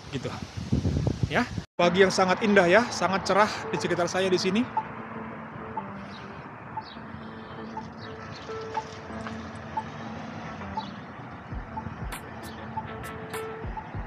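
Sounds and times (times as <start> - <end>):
road traffic noise: 1.8 - 14.0
crossing locator tone beeping: 3.5 - 5.0, 5.6 - 10.0, 10.6 - 14.0.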